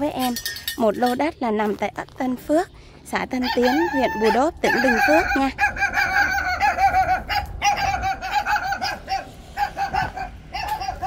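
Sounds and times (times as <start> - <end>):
chickens clucking: 3.4 - 11.0.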